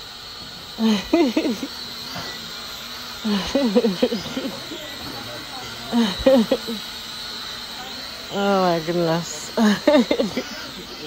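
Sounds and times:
faint high whine: 0.0 - 11.0
steady background hum: 0.0 - 11.0
woman laughing: 0.7 - 2.4, 3.2 - 5.2, 5.8 - 6.9, 9.4 - 10.8.

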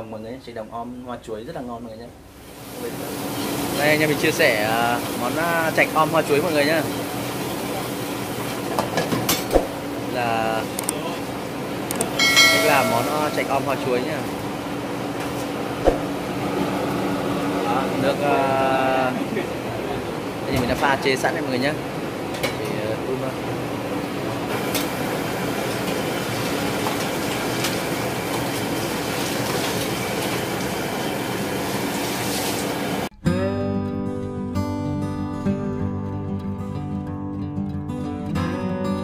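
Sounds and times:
gas stove burning: 2.3 - 33.1
gas burner rushing: 23.6 - 33.1.

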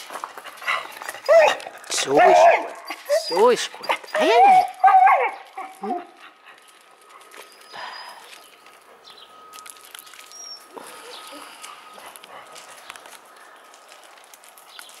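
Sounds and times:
footsteps on gravel: 0.0 - 15.0
dog whining: 0.8 - 6.4.

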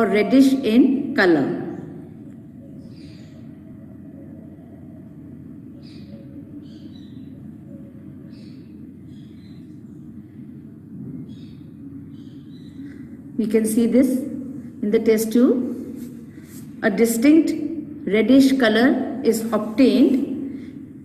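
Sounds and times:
low background hum: 0.0 - 21.0.

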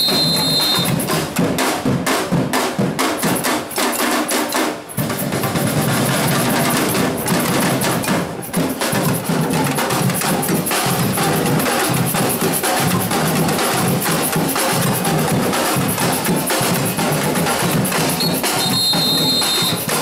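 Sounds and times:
hand percussion: 0.0 - 1.8, 3.0 - 20.0
snare drums: 0.0 - 20.0
bass drums: 5.0 - 20.0.

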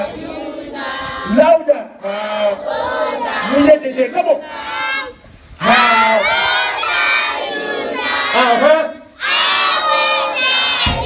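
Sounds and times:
children singing birthday song: 0.0 - 1.4, 2.2 - 8.6, 9.2 - 11.0.

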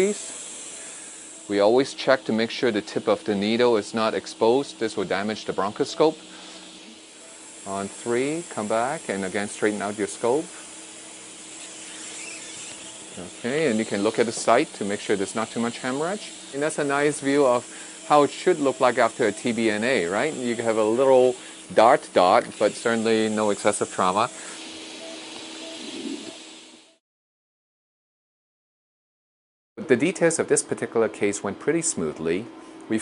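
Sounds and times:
steady hiss: 0.0 - 27.0.

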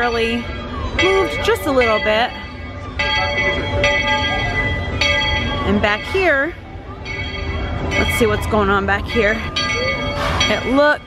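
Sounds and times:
bell ringing: 0.0 - 11.0.

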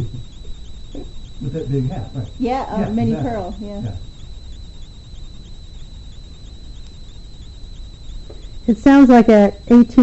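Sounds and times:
background hiss and low rumble: 0.0 - 10.0
thin high-pitched whine: 0.0 - 10.0.

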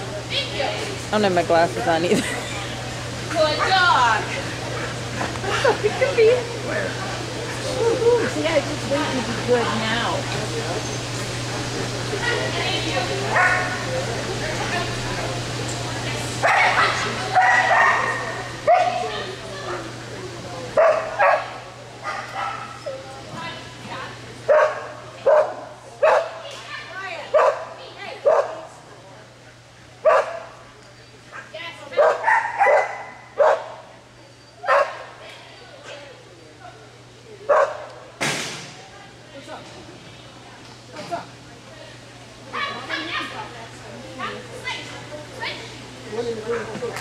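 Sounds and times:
dog barking: 13.4 - 13.8, 16.4 - 19.1, 20.8 - 22.8, 24.5 - 26.4, 27.3 - 28.6, 30.0 - 30.5, 32.0 - 33.8, 34.6 - 35.1, 37.5 - 37.9.

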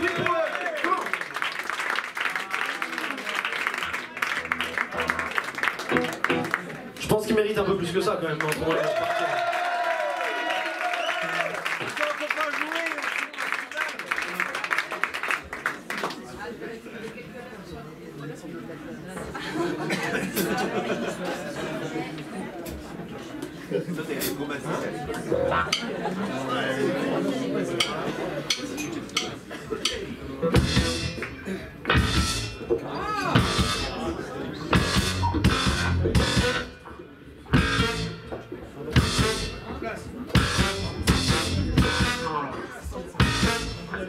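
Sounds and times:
electric guitar: 3.8 - 6.8
voices chattering: 16.2 - 30.6
drum kit: 27.8 - 34.1, 34.7 - 36.8, 37.5 - 42.4, 43.2 - 44.0
horn section with saxophone: 37.6 - 38.2, 40.4 - 42.5, 43.2 - 44.0.

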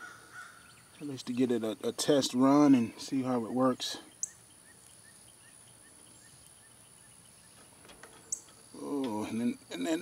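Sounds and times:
short chirps of bird or insect: 4.1 - 8.8.

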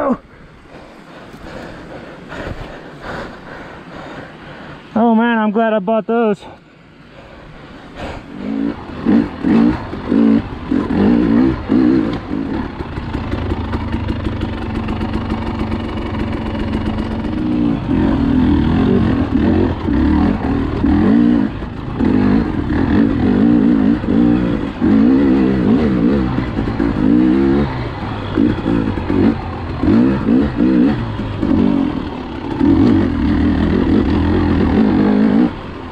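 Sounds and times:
dirt bike engine revving: 8.2 - 35.9.

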